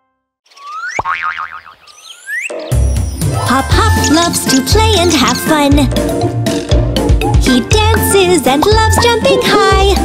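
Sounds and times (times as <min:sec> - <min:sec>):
cartoon boing: 0:00.9 - 0:01.8
upbeat children's music: 0:02.7 - 0:10.0.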